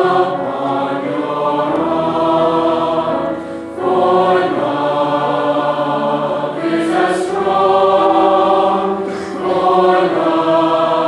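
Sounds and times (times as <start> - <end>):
choir singing sustained chords: 0.0 - 11.0.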